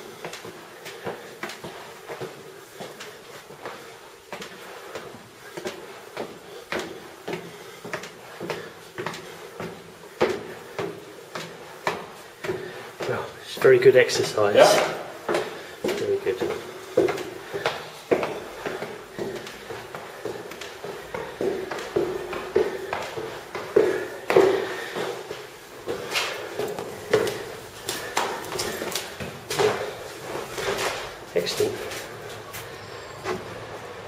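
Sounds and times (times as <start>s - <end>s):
footsteps on stone stairs: 0.0s - 34.0s.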